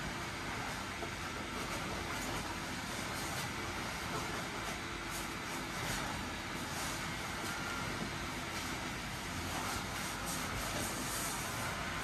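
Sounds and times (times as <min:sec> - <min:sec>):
blower fan running: 0:00.0 - 0:12.0.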